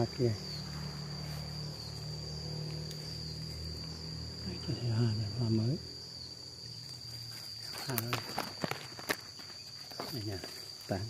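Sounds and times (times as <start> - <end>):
insect high-pitched trill: 0.0 - 11.0.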